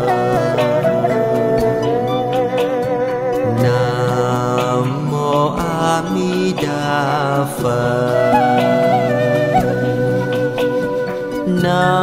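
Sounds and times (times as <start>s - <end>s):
steady low drone: 3.4s - 5.1s
devotional chant singing: 3.4s - 10.3s, 11.5s - 12.0s.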